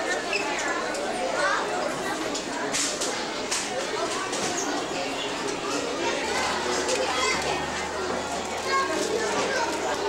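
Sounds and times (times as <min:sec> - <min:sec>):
children's voices: 0:00.0 - 0:10.0
indistinct chatter: 0:00.0 - 0:10.0.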